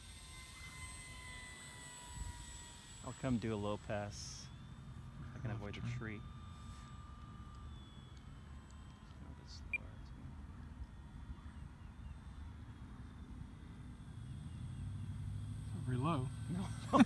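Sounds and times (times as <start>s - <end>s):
model plane electric motor hum: 0.0s - 17.0s.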